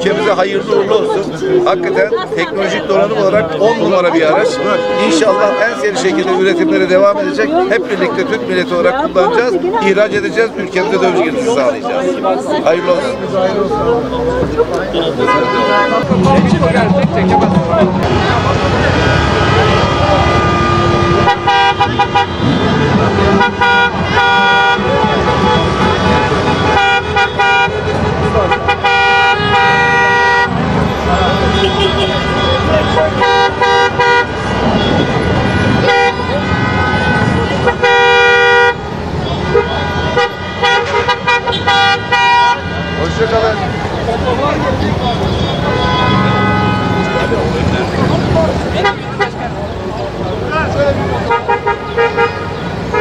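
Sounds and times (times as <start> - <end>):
crowd chatter: 0.0 - 53.0
vehicle horns honking: 2.0 - 9.5, 14.8 - 53.0.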